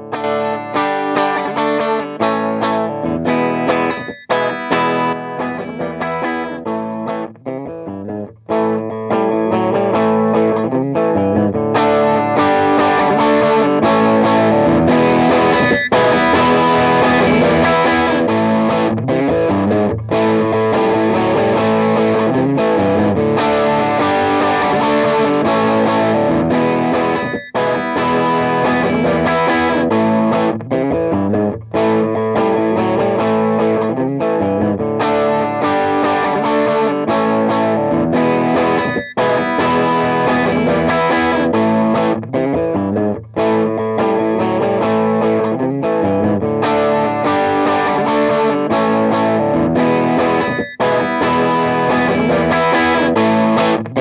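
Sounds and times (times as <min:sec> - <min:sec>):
overdriven electric guitar: 0:00.0 - 0:54.0.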